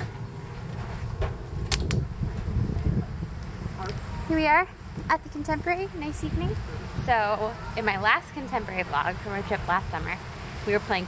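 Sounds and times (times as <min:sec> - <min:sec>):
low handling rumble: 0:00.0 - 0:10.3.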